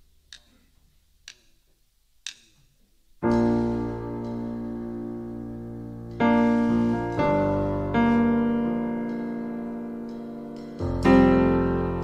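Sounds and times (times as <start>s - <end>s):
drumsticks clicking together: 0.3s - 2.7s.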